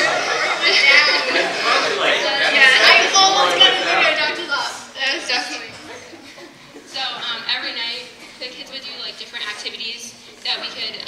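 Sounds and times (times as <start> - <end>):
people laughing: 0.0 - 4.4, 5.3 - 7.4
young people talking: 0.0 - 11.0.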